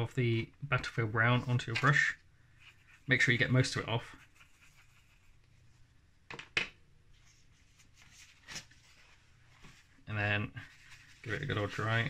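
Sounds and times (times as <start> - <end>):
paintbrush scratching on palette: 2.5 - 5.6.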